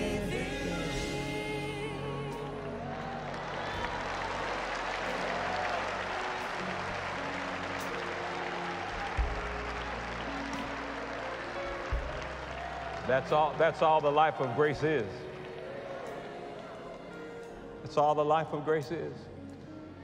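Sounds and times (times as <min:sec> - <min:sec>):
band playing sustained chords: 0:00.0 - 0:20.0
congregation applauding: 0:02.3 - 0:18.7.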